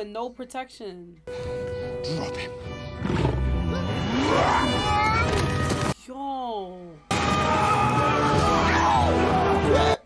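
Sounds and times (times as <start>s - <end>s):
orchestral music: 1.3s - 5.9s.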